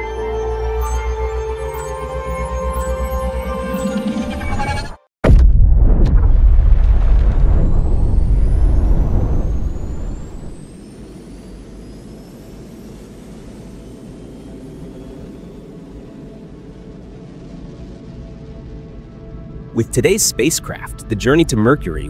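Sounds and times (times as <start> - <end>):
faint rising whistles: 0.0 - 4.9, 7.6 - 19.7
low steady drone: 0.0 - 4.9, 7.4 - 22.0
deep rumbling whoosh: 3.5 - 10.8.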